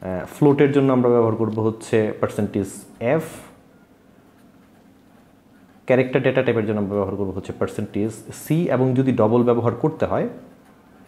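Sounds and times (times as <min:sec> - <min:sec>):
man talking: 0:00.0 - 0:03.6, 0:05.9 - 0:10.5.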